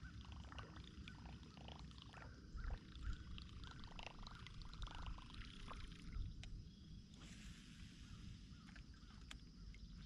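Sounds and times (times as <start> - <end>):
faint ticks: 6.2 - 6.6, 8.6 - 10.0.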